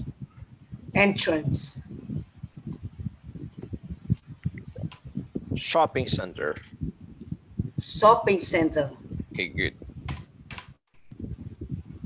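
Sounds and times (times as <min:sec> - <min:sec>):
keyboard typing: 0:10.1 - 0:11.2.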